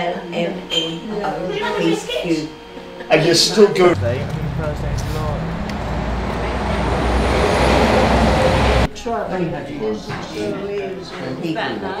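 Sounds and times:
vehicle engine rumbling: 3.9 - 8.9.

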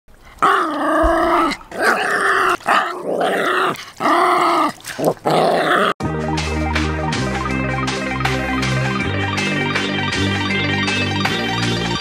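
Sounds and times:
small dog growling and barking: 0.4 - 6.0.

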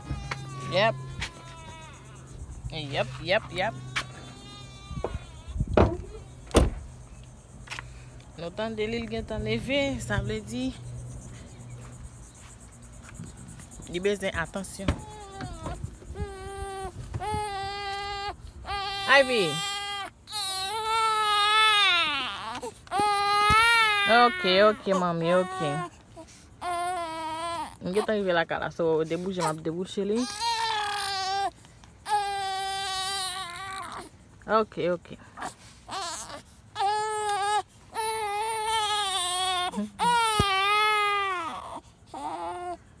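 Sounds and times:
baby crying: 0.0 - 2.4, 3.5 - 5.9, 15.0 - 25.9, 26.6 - 28.1, 30.2 - 34.1, 35.9 - 42.8.

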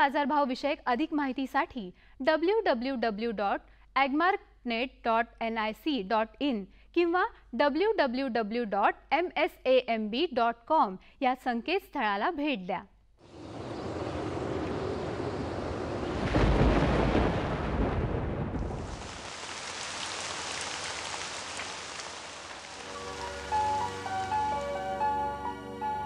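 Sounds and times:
thunder rumble: 13.2 - 25.2
steady rain hiss: 13.2 - 26.0
melodic music jingle: 22.9 - 26.0.

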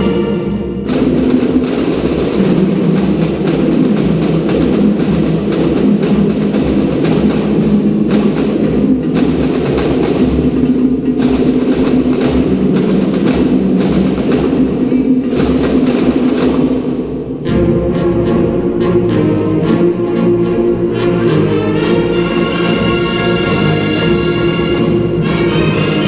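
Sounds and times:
live band music with drumbeat: 0.0 - 26.0.

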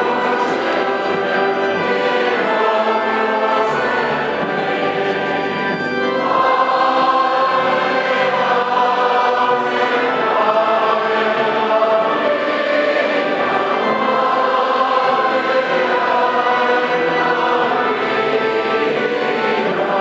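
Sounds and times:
choir and congregation singing hymn: 0.0 - 20.0.

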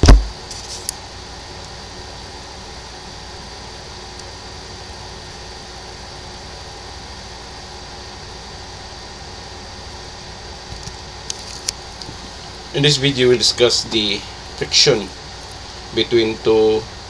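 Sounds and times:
steady hum and hiss: 0.0 - 17.0.

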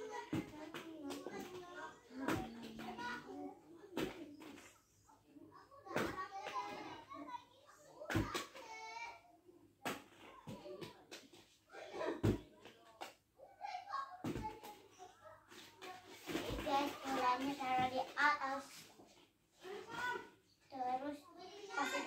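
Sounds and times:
plastic balls knocking and rattling: 0.1 - 4.8, 14.2 - 20.2.

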